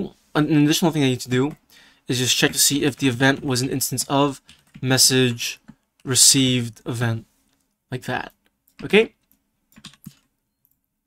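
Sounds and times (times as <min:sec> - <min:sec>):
keyboard keystrokes: 0:08.7 - 0:10.3.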